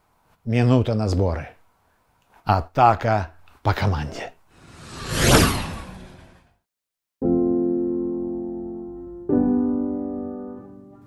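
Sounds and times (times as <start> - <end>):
whoosh transition effect: 4.6 - 6.6.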